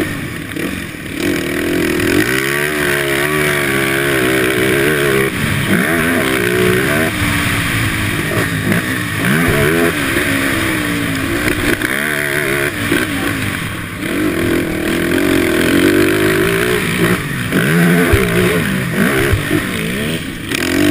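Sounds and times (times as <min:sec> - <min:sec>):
dirt bike engine revving: 0:00.0 - 0:20.9.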